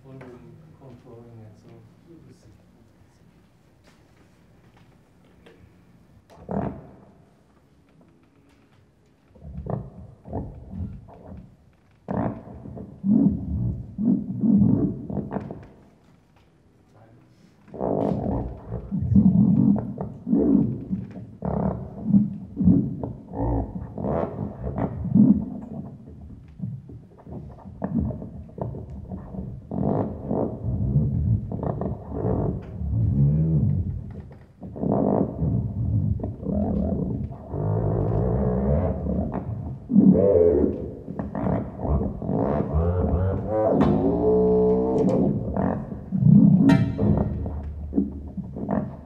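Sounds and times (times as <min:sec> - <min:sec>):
buzzy electronic tones: 0:46.6 - 0:48.4.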